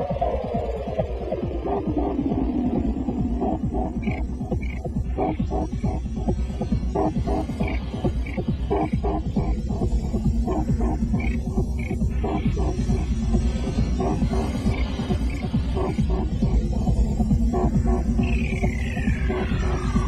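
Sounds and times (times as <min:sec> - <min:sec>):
experimental electronic music: 0:00.0 - 0:20.0.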